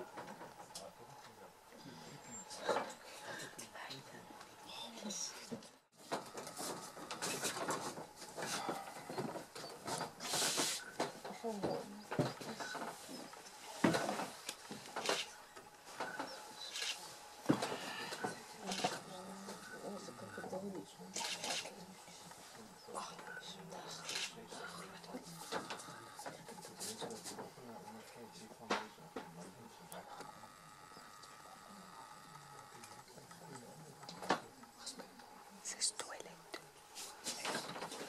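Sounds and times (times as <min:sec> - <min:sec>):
people whispering: 0:00.0 - 0:38.0
murmuring voices: 0:06.0 - 0:38.0.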